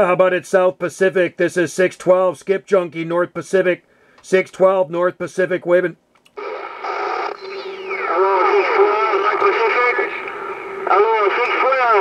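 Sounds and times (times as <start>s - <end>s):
distant voice over radio: 6.4s - 12.0s
radio static hiss: 6.4s - 12.0s.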